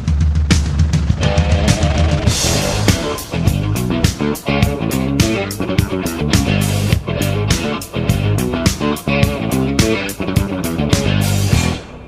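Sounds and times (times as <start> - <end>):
rock music with drums and bass: 0.0 - 12.0
held guitar line: 1.1 - 12.0.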